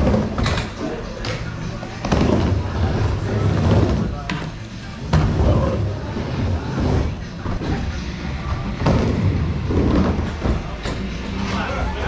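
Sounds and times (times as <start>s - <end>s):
skateboard wheels rolling on wood: 0.0s - 11.6s.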